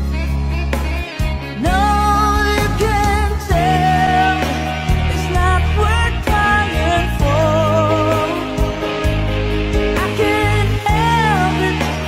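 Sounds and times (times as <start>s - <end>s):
slow rock song: 0.0s - 12.0s
strong bass line: 0.0s - 12.0s.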